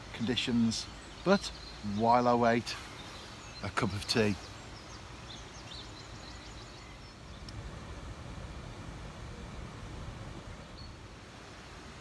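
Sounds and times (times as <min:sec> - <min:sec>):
faint bird chirps: 0:00.1 - 0:07.5, 0:10.6 - 0:11.0.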